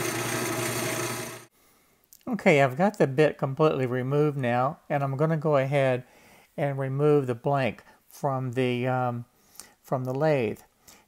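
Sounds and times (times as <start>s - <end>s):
wood lathe humming: 0.0s - 1.5s.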